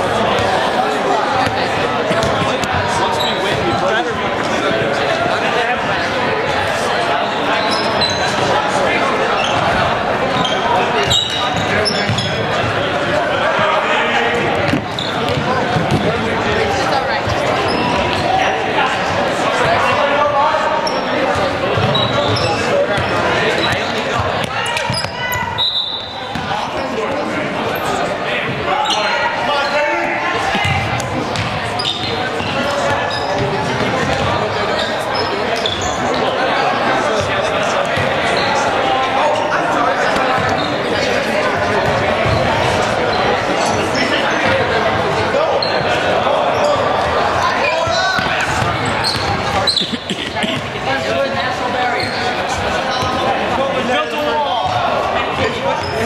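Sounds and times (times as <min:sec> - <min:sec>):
players calling out: 0:00.0 - 0:56.0
ball bouncing on gym floor: 0:14.7 - 0:16.1.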